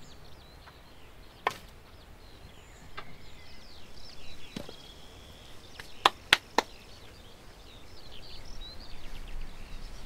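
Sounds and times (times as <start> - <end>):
faint bird chirping: 0.0 - 10.0.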